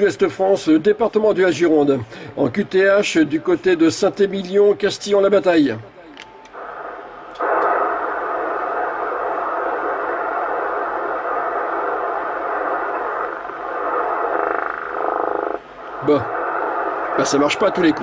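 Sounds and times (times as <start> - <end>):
radio static hiss: 0.0 - 18.0.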